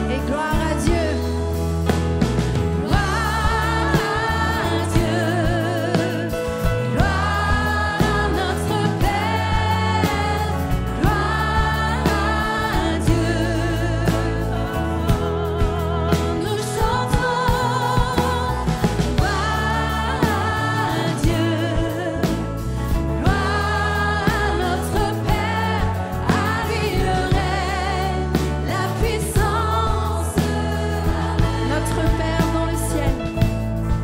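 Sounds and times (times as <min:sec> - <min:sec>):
women singing: 0:00.0 - 0:01.4, 0:02.8 - 0:33.6
worship band playing: 0:00.0 - 0:34.0.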